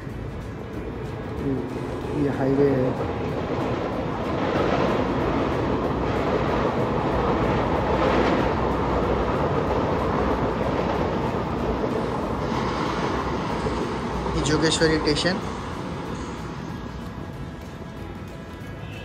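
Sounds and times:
train running on tracks: 0.0 - 19.0.

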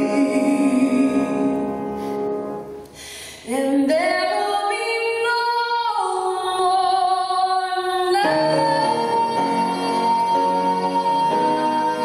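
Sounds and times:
woman singing into microphone: 0.0 - 1.8, 3.3 - 12.0.

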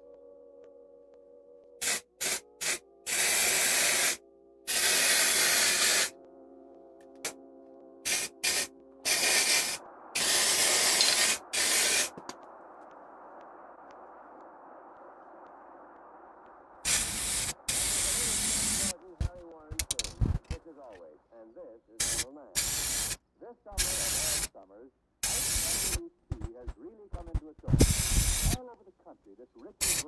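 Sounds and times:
aerosol spray can hissing: 1.8 - 6.1, 8.1 - 12.2, 16.9 - 18.9, 22.0 - 23.2, 23.8 - 24.5, 25.2 - 26.0, 27.8 - 28.6.

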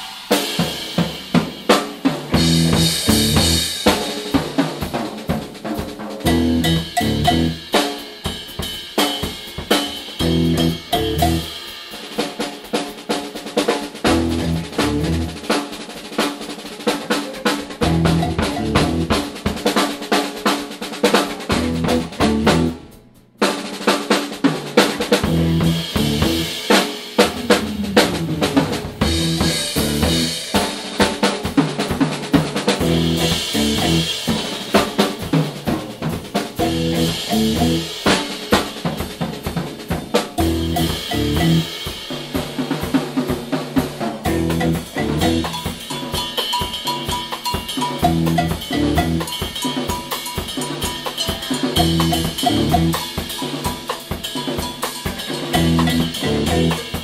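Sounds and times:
rock drum kit playing fast: 0.0 - 57.0
low pitched notes: 10.2 - 11.4, 14.1 - 15.4, 17.8 - 19.2, 21.5 - 22.8, 25.2 - 26.6, 27.2 - 30.4, 32.8 - 34.2, 36.6 - 38.0, 44.3 - 45.4, 55.6 - 56.8.

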